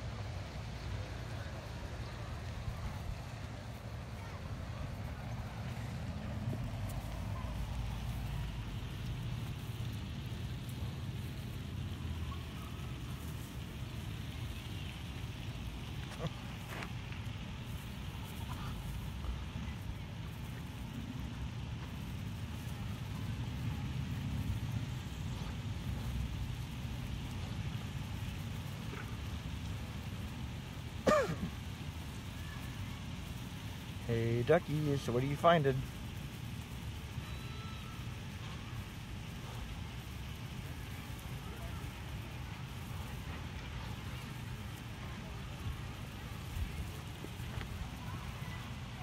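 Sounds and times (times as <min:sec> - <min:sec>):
low outdoor rumble: 0:00.0 - 0:49.0.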